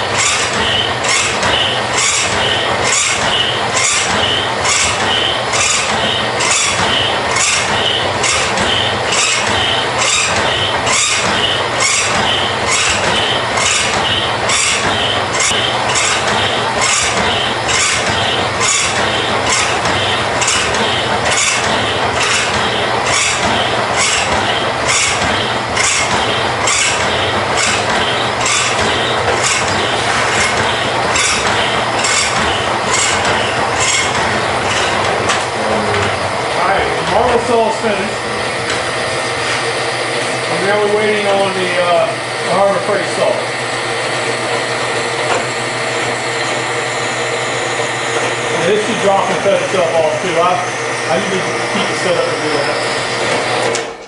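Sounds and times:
bandsaw running: 0:00.0 - 0:54.0
hacksaw blade scraping metal: 0:00.2 - 0:01.4, 0:02.0 - 0:35.4.

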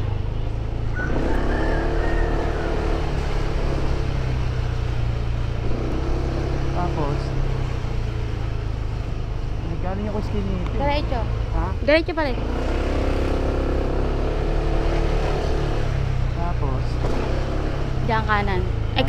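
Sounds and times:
motorcycle engine rumble: 0:00.0 - 0:19.0.

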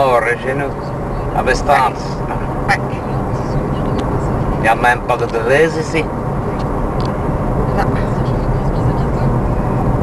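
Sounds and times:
car engine and road rumble: 0:00.0 - 0:10.0.

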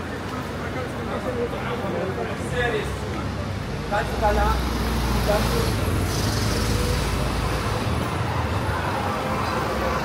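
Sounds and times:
passers-by talking: 0:00.0 - 0:10.0
road traffic rumble: 0:00.0 - 0:10.0.

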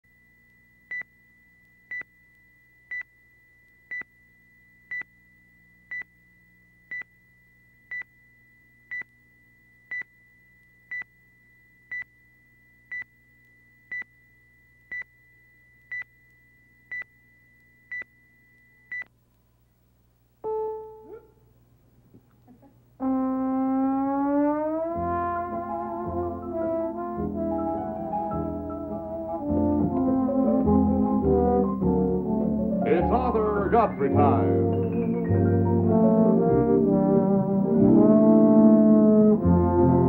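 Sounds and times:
faint low hum: 0:00.1 - 0:40.0.

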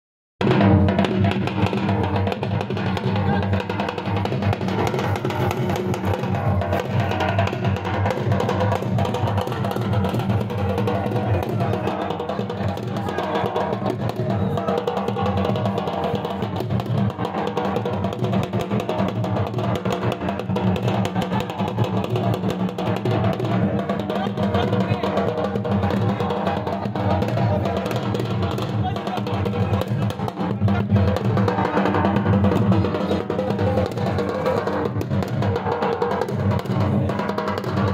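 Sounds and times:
dhol drums beating: 0:00.4 - 0:37.9.

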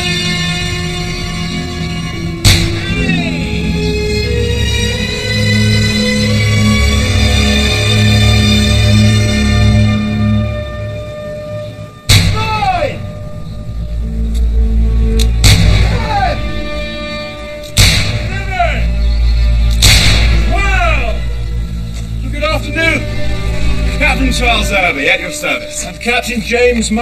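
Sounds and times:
background music: 0:00.0 - 0:27.0
person shouting: 0:12.3 - 0:13.0, 0:15.8 - 0:16.5
gunshots: 0:17.8 - 0:18.3, 0:19.8 - 0:20.6.

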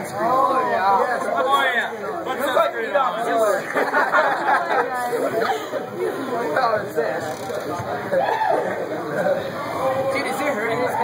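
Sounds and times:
boys chattering: 0:00.0 - 0:11.0.

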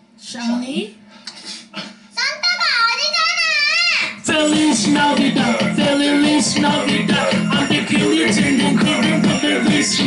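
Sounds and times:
electronic music track: 0:04.3 - 0:10.0.

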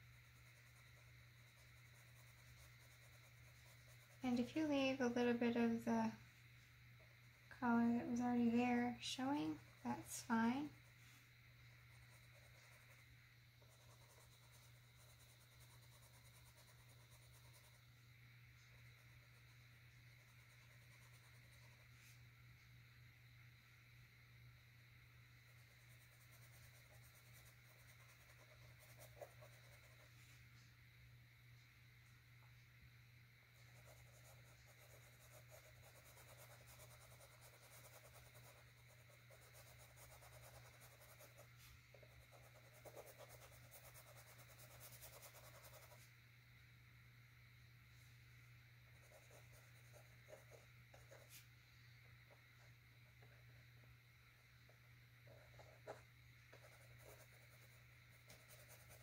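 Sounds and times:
paintbrush scratching on canvas: 0:00.0 - 0:05.8, 0:11.8 - 0:17.9, 0:25.5 - 0:30.3, 0:33.6 - 0:46.1, 0:49.0 - 0:51.5, 0:55.3 - 0:59.0.

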